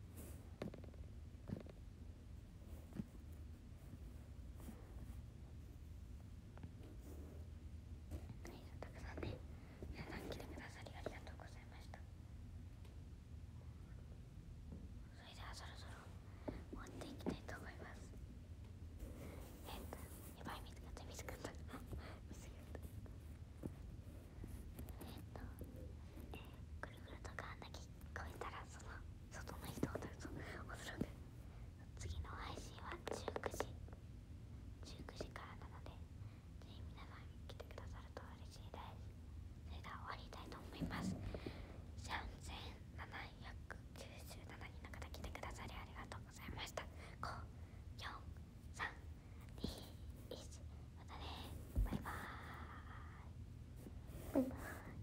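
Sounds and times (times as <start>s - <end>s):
steady low hum: 0.0s - 55.0s
woman whispering: 8.4s - 12.1s, 15.1s - 18.1s, 19.6s - 22.9s, 24.9s - 31.2s, 31.8s - 33.8s, 34.8s - 39.1s, 39.7s - 53.4s, 54.2s - 55.0s.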